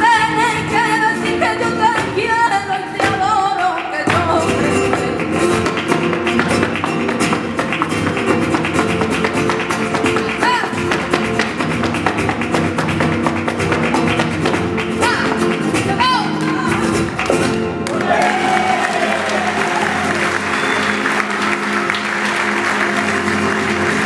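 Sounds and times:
acoustic guitar playing: 0.0s - 24.0s
dancer's percussive footwork: 0.3s - 17.9s
hand claps: 1.9s - 24.0s.

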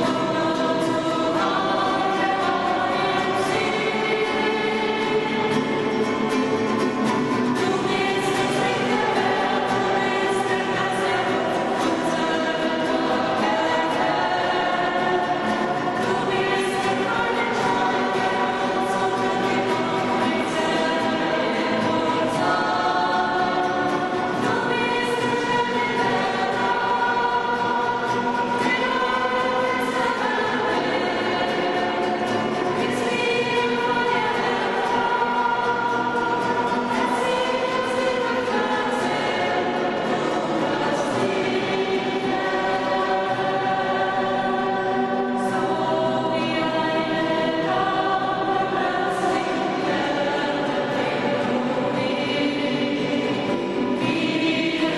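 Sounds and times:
strummed classical guitars: 0.0s - 54.9s
voices singing worship song: 0.0s - 54.9s.

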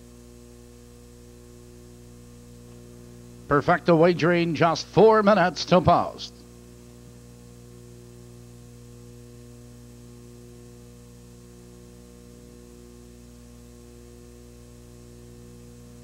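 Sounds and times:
electrical hum: 0.0s - 16.0s.

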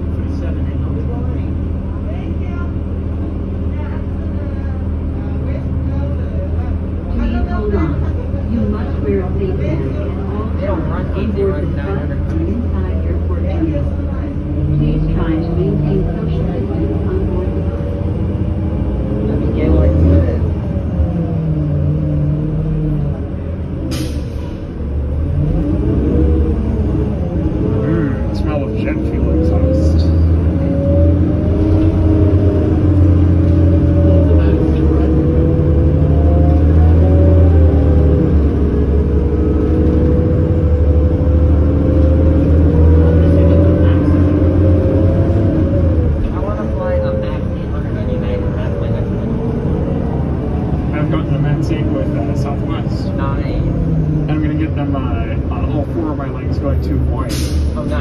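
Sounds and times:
bus engine hum: 0.0s - 58.0s
passenger voices: 0.0s - 58.0s
air brake hiss: 57.3s - 57.8s.

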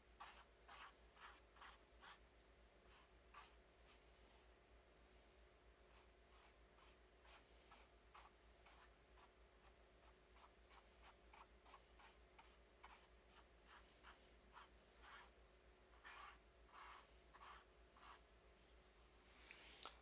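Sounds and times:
paintbrush strokes on canvas: 0.2s - 2.2s, 5.9s - 15.3s, 15.9s - 18.2s.

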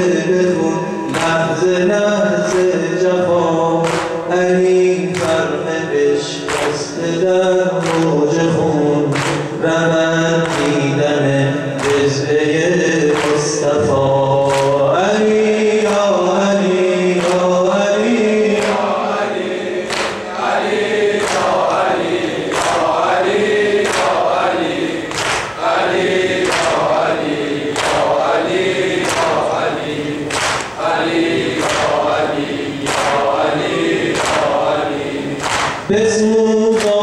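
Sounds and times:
man singing a lament into microphone: 0.0s - 19.5s, 35.8s - 37.0s
person leading a mourning chant: 0.0s - 25.0s, 25.6s - 37.0s.

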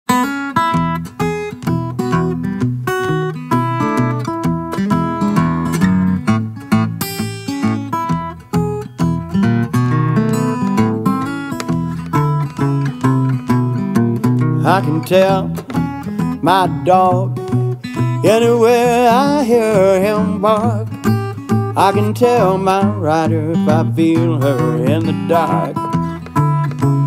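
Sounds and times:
acoustic guitar plucking: 0.1s - 27.0s.

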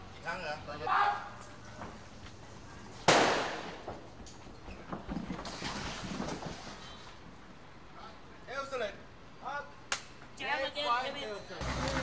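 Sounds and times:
blank gunshot crack: 3.1s - 3.9s.

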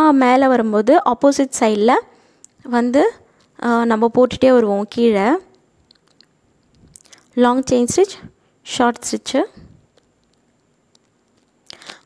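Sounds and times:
woman speaking: 0.0s - 5.6s, 7.4s - 9.7s.

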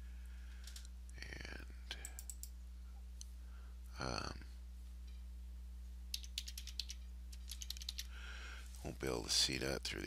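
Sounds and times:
steady low hum: 0.0s - 10.0s
computer keyboard typing: 2.0s - 2.5s, 6.1s - 8.1s.

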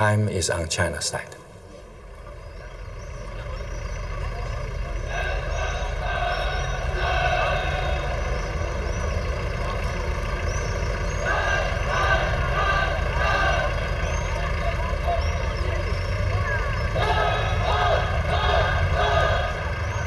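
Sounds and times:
indistinct voices: 0.0s - 20.0s
low traffic rumble: 0.0s - 20.0s
vehicles passing: 0.0s - 20.0s.

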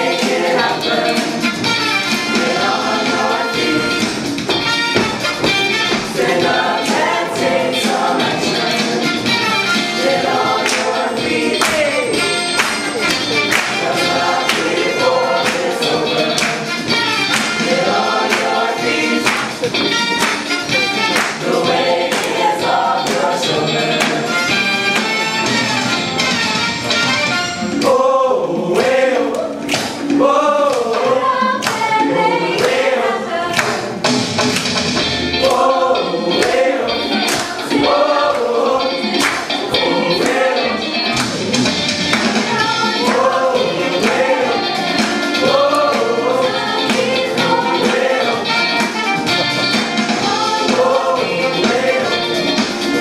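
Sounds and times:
choir singing in parts: 0.0s - 26.6s, 27.3s - 34.2s, 34.8s - 53.0s
percussive beat: 0.0s - 26.6s, 27.6s - 53.0s.

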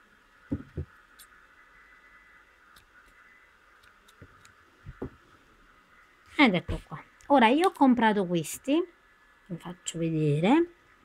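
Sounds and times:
faint steady hum: 0.0s - 11.0s
soft knocks: 0.5s - 0.9s.

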